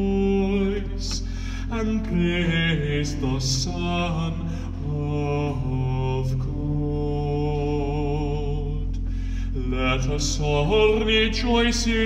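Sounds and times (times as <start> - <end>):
pipe organ chords: 0.0 - 12.0.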